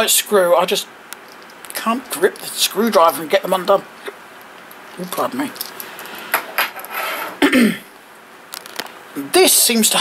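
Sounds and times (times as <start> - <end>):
man clearing his throat: 7.4 - 7.9.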